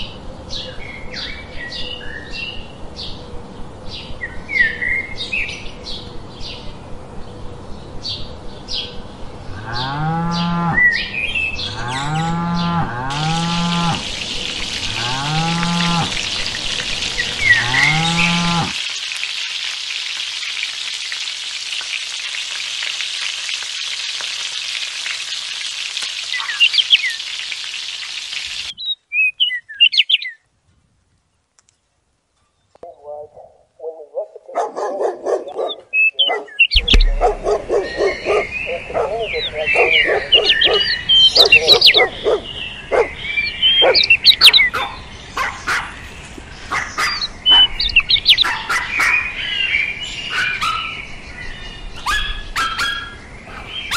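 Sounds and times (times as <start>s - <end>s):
birds chirping: 3.9s - 18.7s, 26.2s - 27.6s, 28.5s - 30.4s, 32.5s - 53.9s
cattle mooing: 9.5s - 10.8s, 11.6s - 14.1s, 14.8s - 16.2s, 17.5s - 18.8s.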